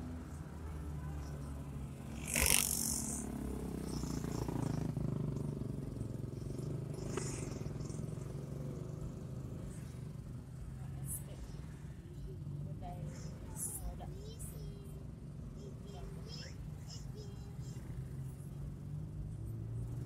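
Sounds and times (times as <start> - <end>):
car engine and tyres drone: 0.0 - 20.0.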